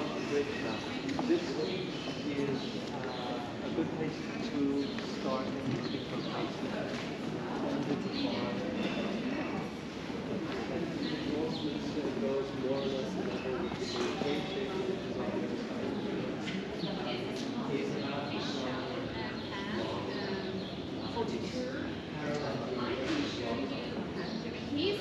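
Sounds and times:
people talking: 10.3s - 25.0s.

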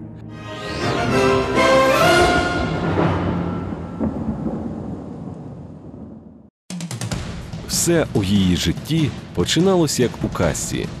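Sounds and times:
deep thunder-like boom: 2.6s - 6.5s.

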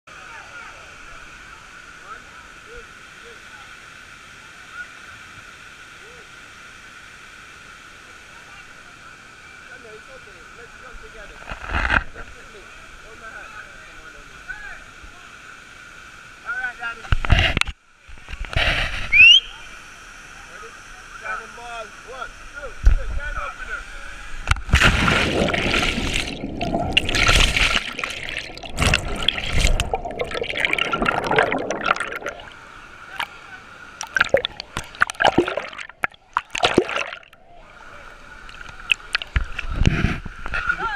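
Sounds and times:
waterfall rushing: 24.8s - 37.4s.

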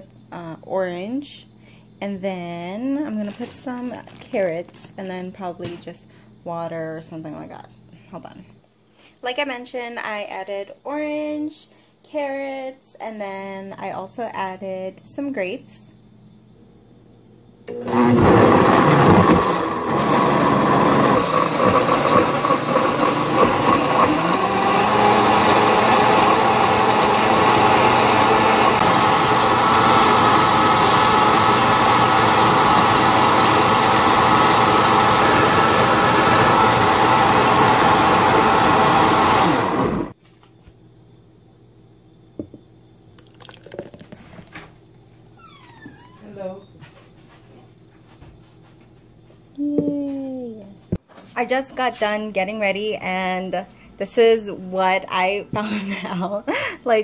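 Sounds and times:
blender chopping frozen fruit: 17.7s - 40.2s.

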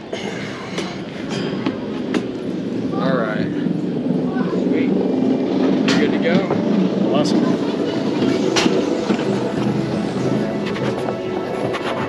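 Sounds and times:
mechanical rumble on metal rail: 0.0s - 12.0s.

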